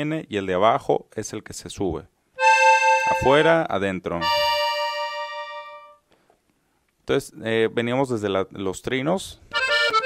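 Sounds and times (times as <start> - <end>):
accordion holding an interval: 2.4 - 3.6, 4.2 - 6.0, 9.5 - 10.0.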